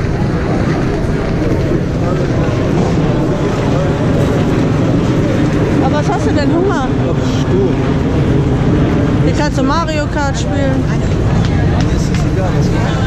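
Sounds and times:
loud low rumble: 0.0 - 13.0
people talking in background: 0.0 - 13.0.

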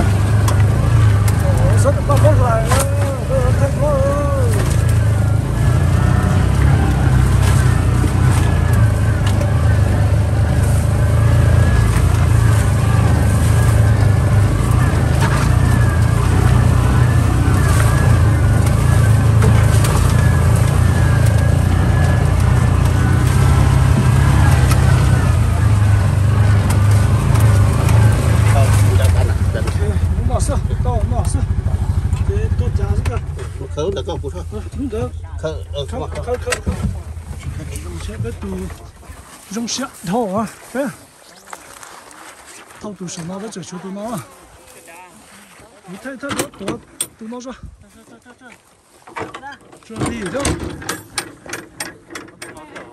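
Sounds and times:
vehicle engine droning: 0.0 - 41.1.

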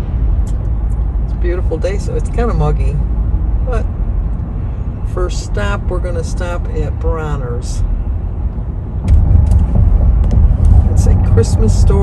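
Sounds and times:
car cabin rumble: 7.1 - 12.0.

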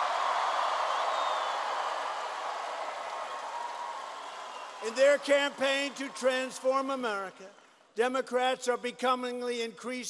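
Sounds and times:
crowd cheering and applauding: 0.0 - 7.6.

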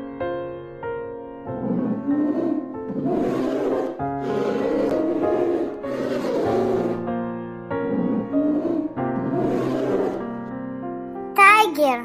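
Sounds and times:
background music: 0.0 - 12.0
bear growling: 1.5 - 10.5.

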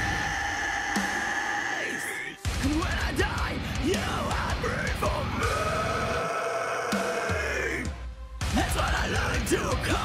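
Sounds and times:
distorted metal backing track: 0.0 - 10.0.

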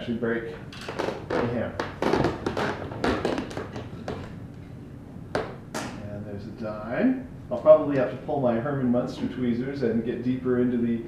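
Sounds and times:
piano parts tapping: 0.6 - 4.6.

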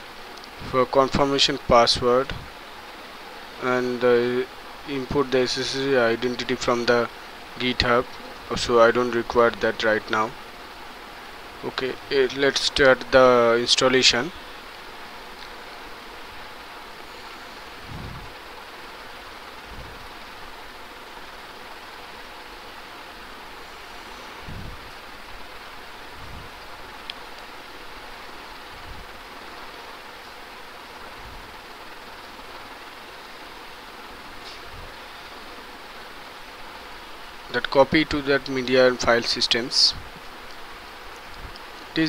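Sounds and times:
faint steady hum: 0.0 - 42.0
room noise hiss: 0.0 - 42.0.

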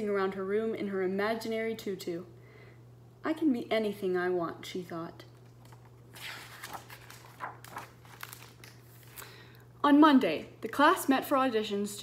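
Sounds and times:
book pages being turned: 5.4 - 9.2.

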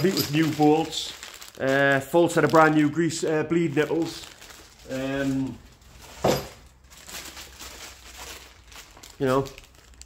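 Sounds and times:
plastic bags crinkling: 0.0 - 10.0.

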